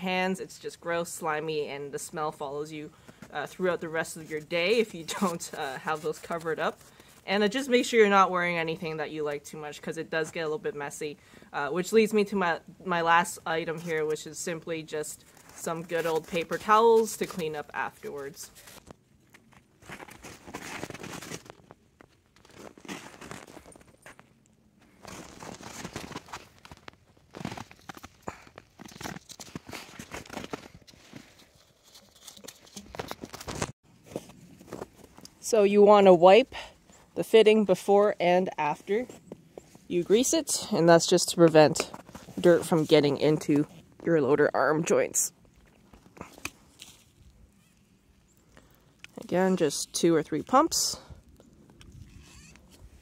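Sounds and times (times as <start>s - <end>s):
footsteps crunching in snow: 15.2s - 35.4s.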